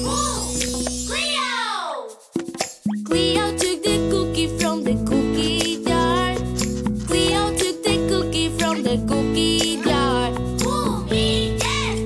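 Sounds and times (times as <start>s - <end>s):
children's song backing music: 0.0s - 12.0s.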